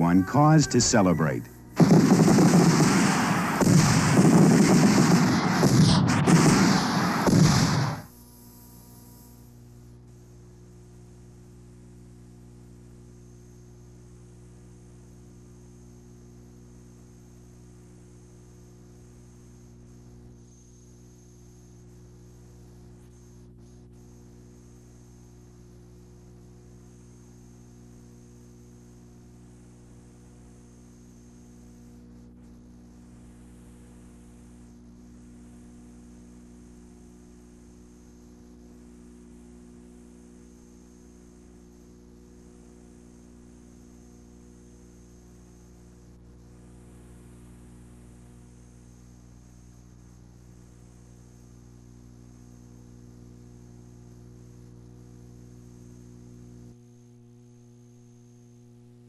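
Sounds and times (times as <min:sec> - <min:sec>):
electrical mains hum: 0:00.0 - 0:59.0
faint background hiss: 0:00.0 - 0:59.0
fireworks popping and crackling: 0:00.6 - 0:08.2.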